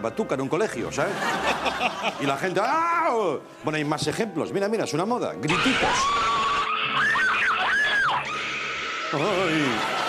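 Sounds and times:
boy screaming in fright: 5.5 - 9.2.

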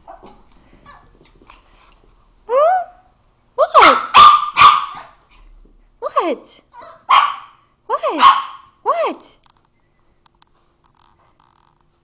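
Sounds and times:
dog barking: 3.8 - 5.2, 6.8 - 8.8.

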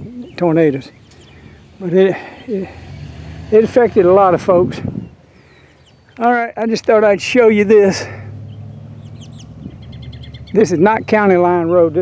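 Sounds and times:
songbird chirping: 0.0 - 12.0.

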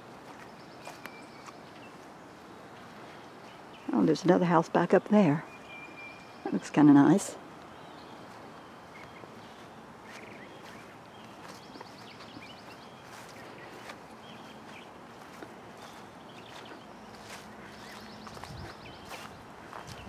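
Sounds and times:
footsteps on grass: 0.0 - 4.1, 7.6 - 20.0.

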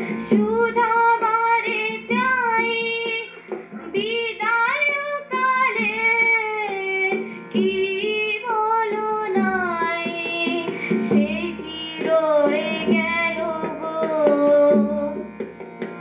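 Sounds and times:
girl singing: 0.0 - 15.3
harmonium drone: 0.0 - 16.0.

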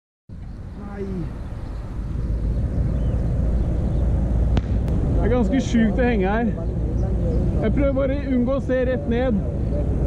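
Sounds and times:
wind rumbling on microphone: 0.3 - 10.0.

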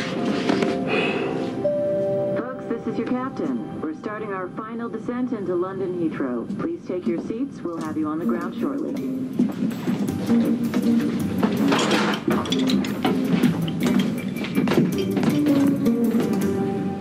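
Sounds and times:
background music held notes: 0.0 - 5.4, 8.2 - 17.0.

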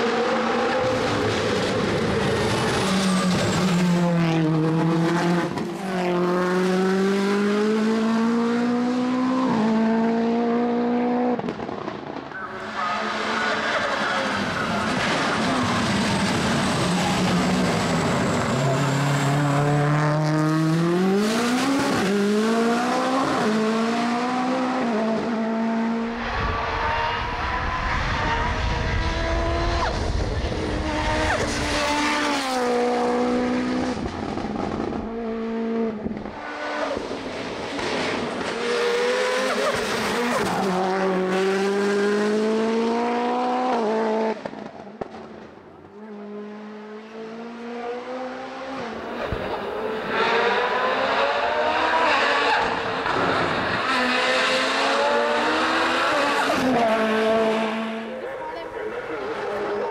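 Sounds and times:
race car engine accelerating: 0.0 - 45.3, 45.9 - 59.9.

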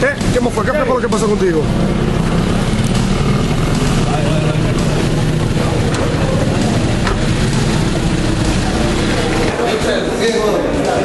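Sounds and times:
vehicle engine running: 0.0 - 10.8
crowd voices: 0.0 - 11.0.

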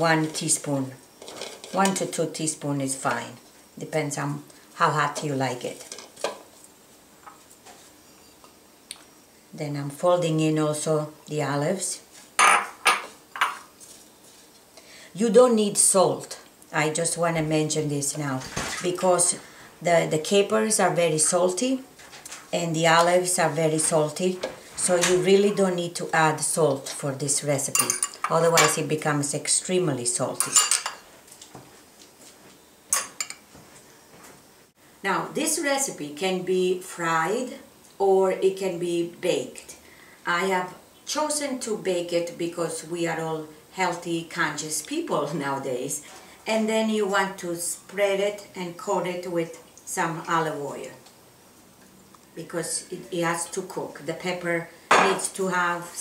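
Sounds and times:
metal spoon clinking on bowl: 27.7 - 28.8.

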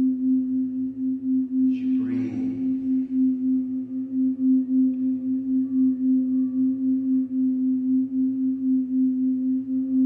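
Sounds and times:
singing bowl pulsing hum: 0.0 - 10.0.

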